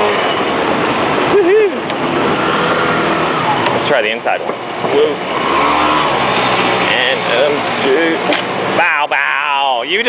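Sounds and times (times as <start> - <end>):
steady rushing noise: 0.0 - 10.0
scooter engine running: 1.8 - 8.7.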